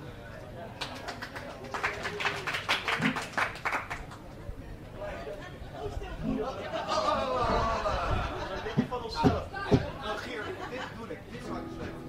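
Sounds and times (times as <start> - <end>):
audience clapping: 0.8 - 4.2.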